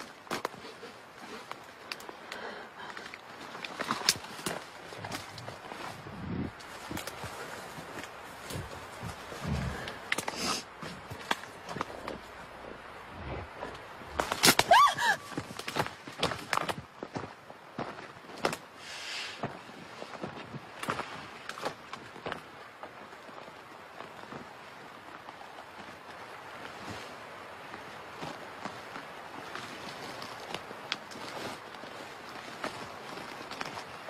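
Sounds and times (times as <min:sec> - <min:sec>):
hissing rustle: 0:00.0 - 0:15.9, 0:18.7 - 0:20.2
crunching rustling footsteps: 0:00.0 - 0:34.0
animal call bending in pitch: 0:14.2 - 0:15.4.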